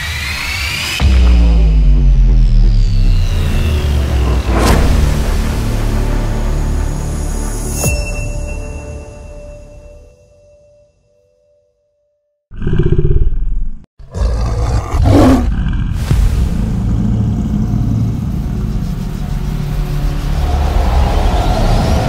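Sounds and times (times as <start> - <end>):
low roaring rumble: 14.2 - 22.0.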